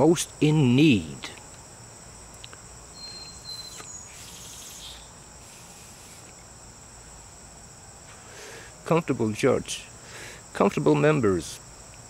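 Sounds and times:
insects chirring: 0.0 - 12.0
thin whistle-like tone: 2.9 - 5.1.

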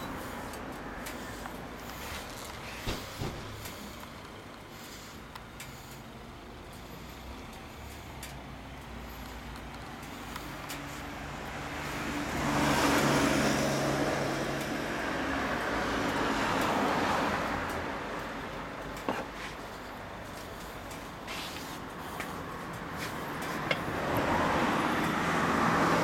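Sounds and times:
road vehicle passing by: 0.0 - 26.0.

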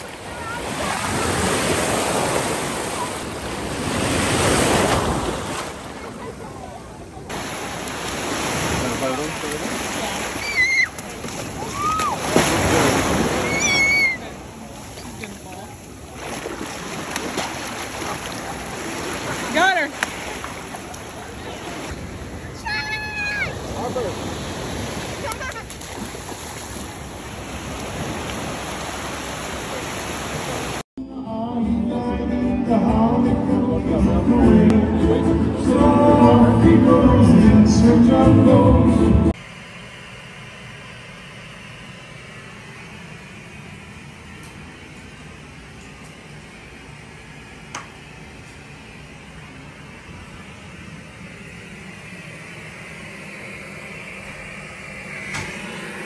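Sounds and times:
steady white noise hiss: 5.1 - 16.3, 38.9 - 56.0.

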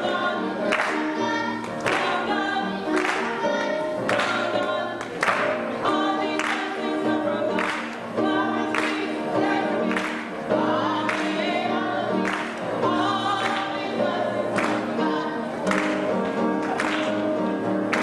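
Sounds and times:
choir singing: 0.0 - 18.0
hands clapping in rhythm: 0.1 - 18.0.

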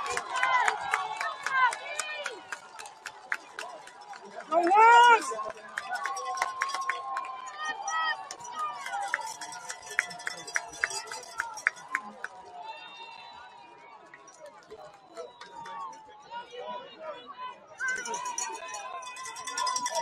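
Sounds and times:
loud shout: 0.0 - 2.6, 4.5 - 13.9
stadium crowd: 0.0 - 20.0.

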